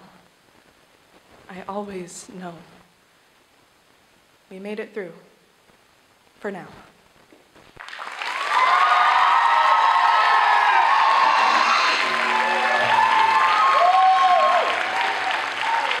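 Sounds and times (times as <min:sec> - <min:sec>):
audience applauding: 0:07.8 - 0:16.0
vocal whoops: 0:08.3 - 0:16.0.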